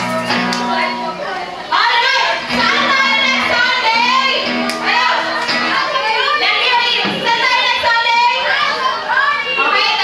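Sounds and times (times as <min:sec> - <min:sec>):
overlapping voices talking and calling: 0:00.0 - 0:10.0.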